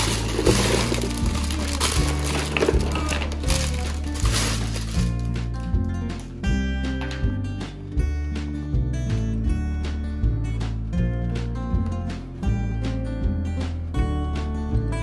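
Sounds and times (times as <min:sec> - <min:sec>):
plastic blocks clattering into box: 0:00.0 - 0:05.2
background music: 0:00.0 - 0:15.0.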